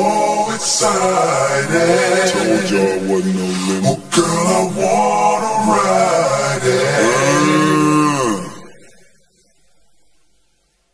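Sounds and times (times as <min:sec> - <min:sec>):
pitched-down male voice singing: 0:00.0 - 0:08.8.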